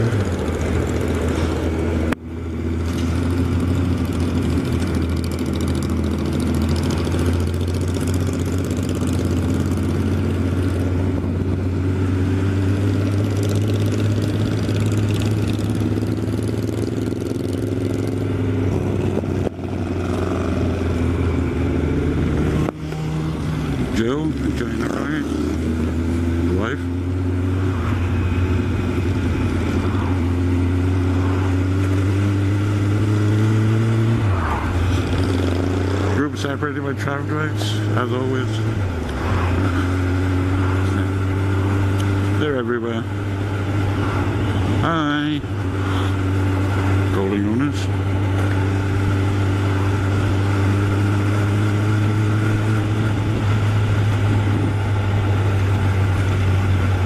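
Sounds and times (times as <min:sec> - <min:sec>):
motorcycle engine running: 0:00.0 - 0:57.0
wind rush: 0:33.6 - 0:36.0, 0:38.7 - 0:41.9, 0:43.6 - 0:44.8.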